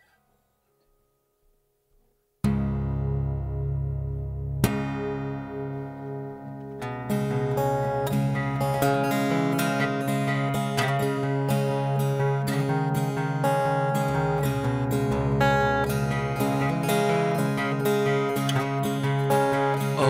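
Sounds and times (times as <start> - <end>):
acoustic guitar strumming chords: 2.4 - 20.0.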